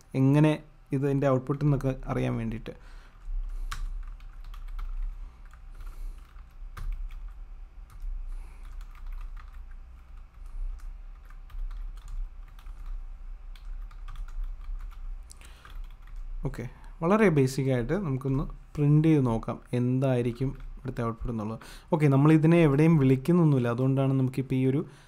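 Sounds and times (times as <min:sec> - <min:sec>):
low electrical hum: 0:00.0 - 0:25.0.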